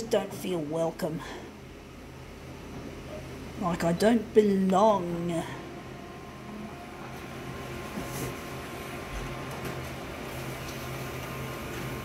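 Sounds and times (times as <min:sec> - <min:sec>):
copier humming: 0:00.0 - 0:12.0.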